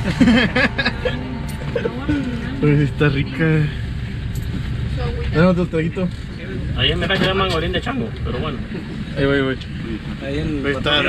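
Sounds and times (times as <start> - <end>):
background music: 0.0 - 5.5
low rumble: 0.0 - 10.9
voices: 0.0 - 11.0.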